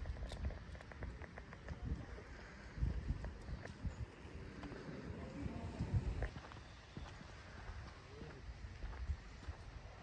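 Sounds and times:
low uneven rumble: 0:00.0 - 0:06.3
dog paws clicking on pavement: 0:00.0 - 0:10.0
footsteps on paved walkway: 0:00.0 - 0:10.0.

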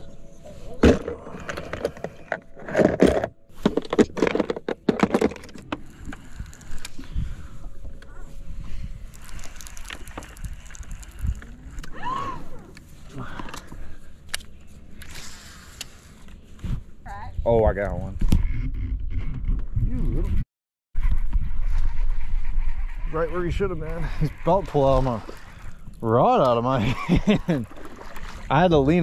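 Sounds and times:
man laughing: 0:26.7 - 0:27.7.

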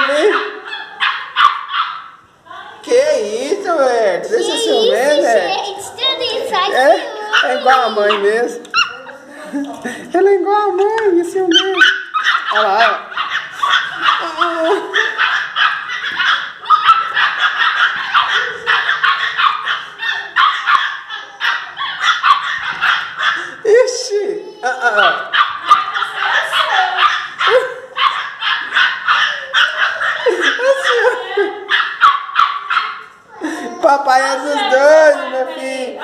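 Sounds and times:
dogs barking and yapping: 0:00.0 - 0:02.4, 0:03.8 - 0:09.2, 0:11.4 - 0:33.6.

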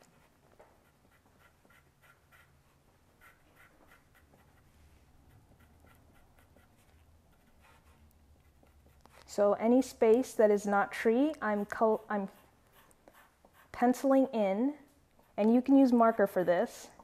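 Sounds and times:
pencil scratching on paper: 0:00.0 - 0:09.3, 0:11.2 - 0:14.3.

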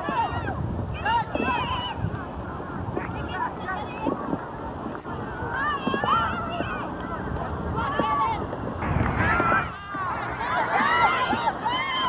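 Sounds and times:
steady low rumble: 0:00.0 - 0:12.0
people shouting: 0:08.8 - 0:12.0.

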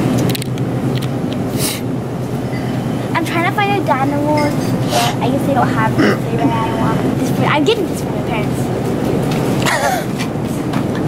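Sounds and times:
person's wavering voice: 0:02.6 - 0:08.6.

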